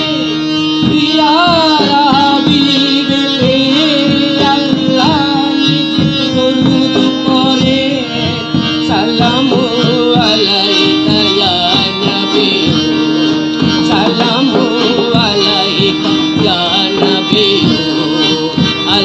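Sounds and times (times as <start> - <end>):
drum kit and hand percussion: 0.0 - 19.0
harmonium chords: 0.0 - 19.0
person singing ornamented lines: 0.0 - 19.0.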